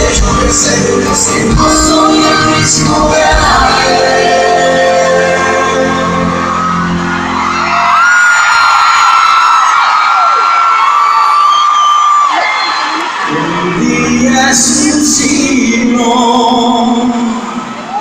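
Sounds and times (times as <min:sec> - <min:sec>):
live pop ballad band: 0:00.0 - 0:08.5, 0:12.7 - 0:18.0.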